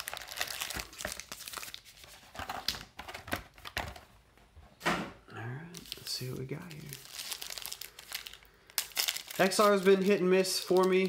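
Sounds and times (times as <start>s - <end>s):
foil wrappers crinkling: 0.0s - 2.8s, 5.8s - 11.0s.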